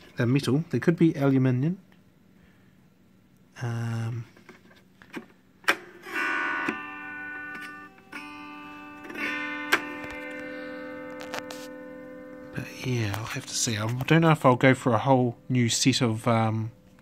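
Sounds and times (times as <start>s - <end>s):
autoharp strummed: 5.8s - 14.4s.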